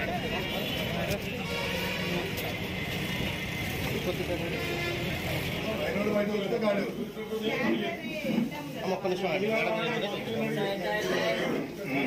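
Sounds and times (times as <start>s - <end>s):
crowd chatter: 0.0s - 12.0s
street noise: 0.0s - 12.0s.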